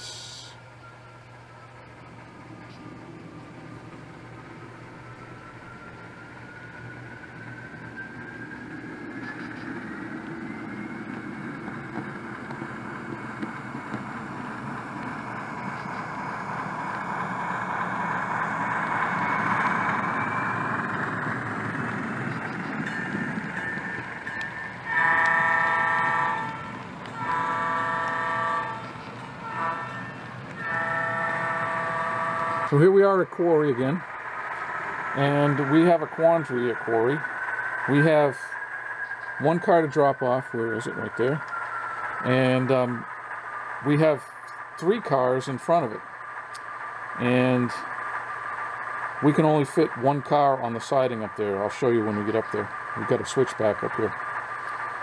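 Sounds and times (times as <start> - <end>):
model train rolling along track: 0.0 - 55.0
rising whine: 0.0 - 55.0
train horn blasts: 24.4 - 32.9.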